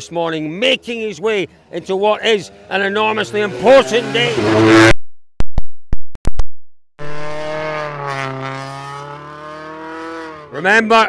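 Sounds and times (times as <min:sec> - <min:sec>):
rally car engine pulling away: 0:02.4 - 0:04.9, 0:07.0 - 0:10.7.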